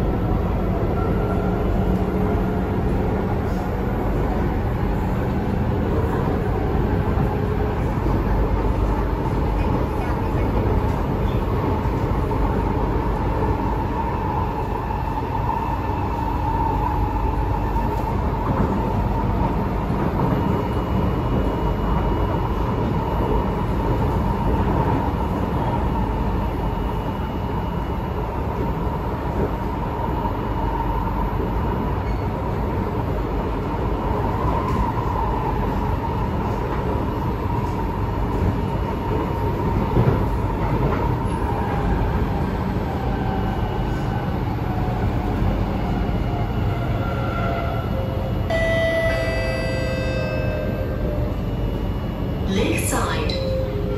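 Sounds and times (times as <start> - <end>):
train wheel-on-rail rumble: 0.0 - 53.9.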